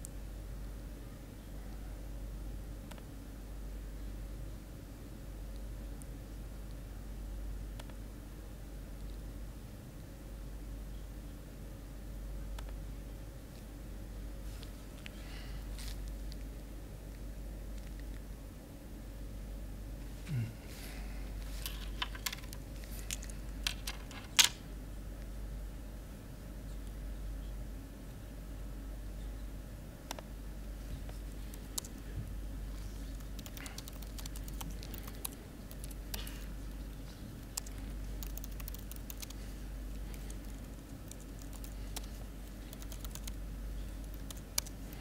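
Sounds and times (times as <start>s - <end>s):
steady low hum: 0.0s - 45.0s
laptop keyboard typing: 31.2s - 32.0s, 33.0s - 45.0s.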